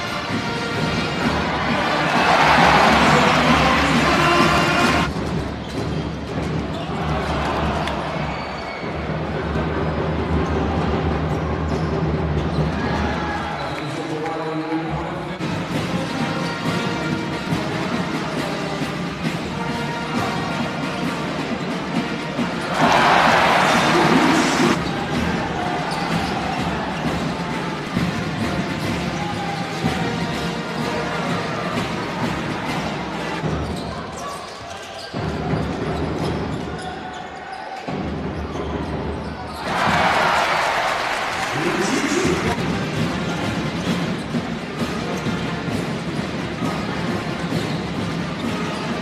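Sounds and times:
crowd noise: 0:00.0 - 0:49.0.

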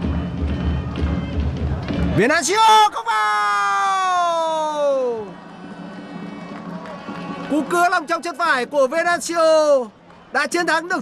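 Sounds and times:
stadium background noise: 0:00.0 - 0:11.0.

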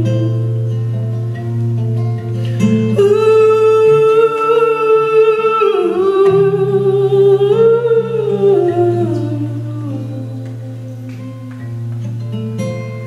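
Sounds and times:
acoustic guitar: 0:00.0 - 0:13.0.

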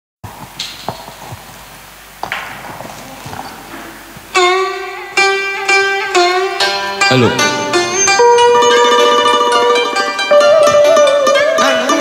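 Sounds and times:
plucked string instrument: 0:03.7 - 0:12.0.

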